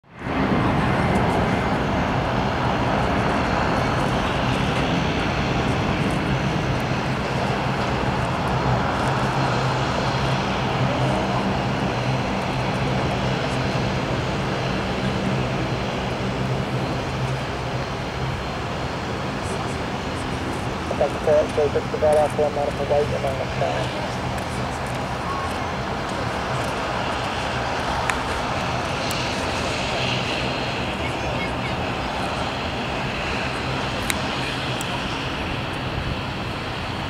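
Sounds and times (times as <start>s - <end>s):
turboprop aircraft taxiing: 0.0s - 37.0s.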